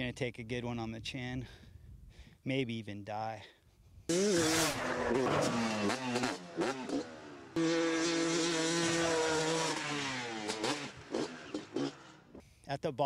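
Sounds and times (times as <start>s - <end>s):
motocross bike engine revving: 4.1s - 12.4s.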